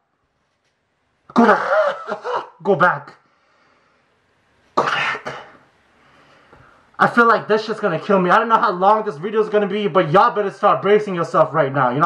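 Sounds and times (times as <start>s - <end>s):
man coughing: 1.3s - 2.7s, 4.8s - 5.6s.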